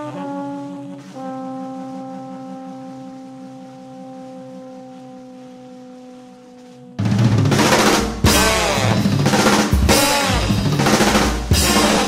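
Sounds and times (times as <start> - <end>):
trombone and saxophone long note: 0.0 - 12.0.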